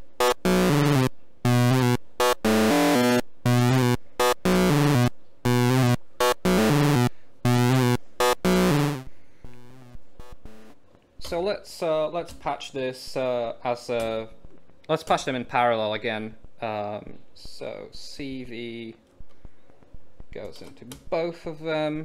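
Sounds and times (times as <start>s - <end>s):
buzzy synthesizer notes: 0.0s - 10.8s.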